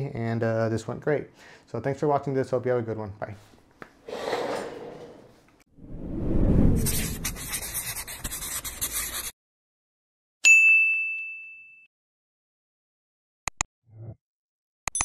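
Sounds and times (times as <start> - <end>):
rushing whoosh: 5.8 - 7.4
bright ding: 10.5 - 11.9.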